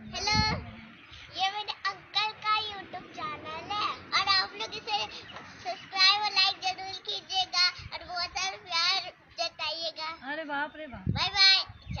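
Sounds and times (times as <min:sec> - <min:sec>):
girl singing: 0:01.2 - 0:10.1.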